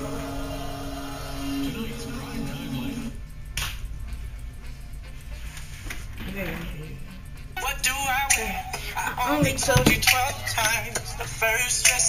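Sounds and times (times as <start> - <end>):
low steady hum: 0.0 - 11.7
sharp click: 3.6 - 3.9.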